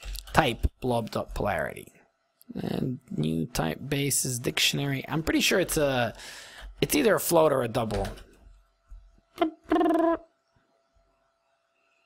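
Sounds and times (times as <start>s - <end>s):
man making wordless sounds: 2.5s - 6.1s, 9.4s - 10.3s.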